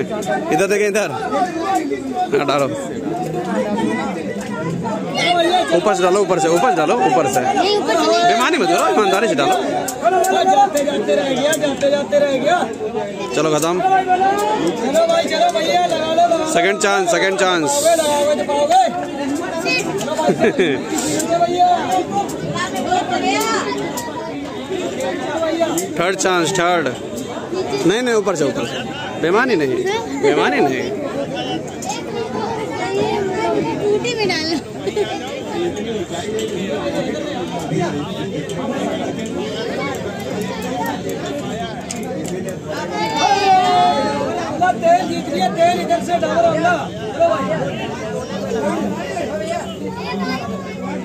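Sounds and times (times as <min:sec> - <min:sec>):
people chattering: 0:00.0 - 0:51.0
people talking over one another: 0:00.0 - 0:51.0.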